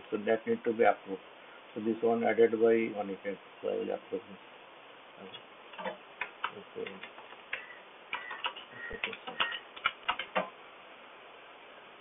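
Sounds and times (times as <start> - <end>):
computer keyboard typing: 6.2 - 10.5.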